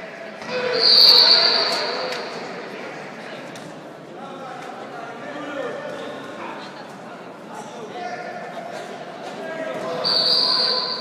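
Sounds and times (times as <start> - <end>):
voices in a hall: 0.0 - 11.0
shrill whistle blowing: 0.6 - 1.9, 10.0 - 11.0.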